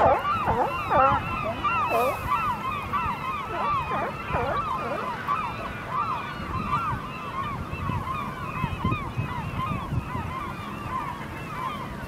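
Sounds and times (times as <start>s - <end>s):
gulls calling: 0.0s - 12.0s.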